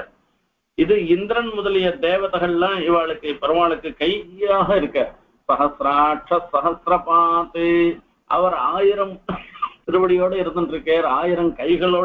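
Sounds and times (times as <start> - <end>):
man speaking: 0.8 - 12.0.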